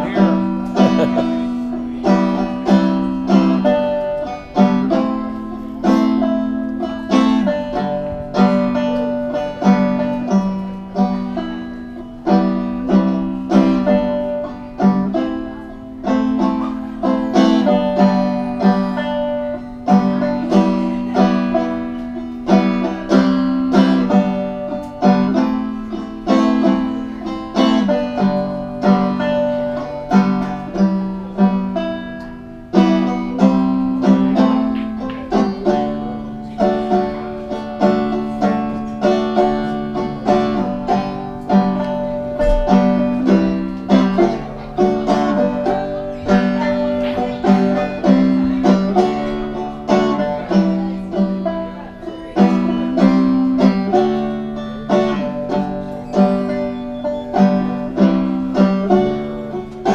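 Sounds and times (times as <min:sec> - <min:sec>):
banjo picked chords: 0:00.0 - 0:59.9.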